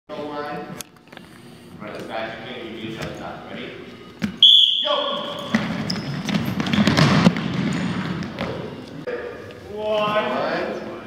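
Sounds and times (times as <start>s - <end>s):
basketballs bouncing on wooden floor: 5.2s - 8.8s.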